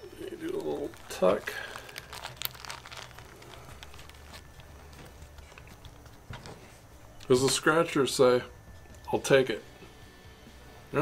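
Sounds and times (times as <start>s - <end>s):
tortilla crinkling and rustling: 0.0s - 7.3s.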